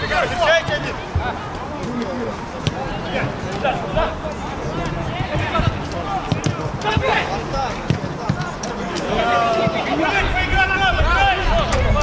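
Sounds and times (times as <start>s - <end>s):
players shouting: 0.0s - 12.0s
football kicked thudding: 2.6s - 3.0s, 4.7s - 8.5s.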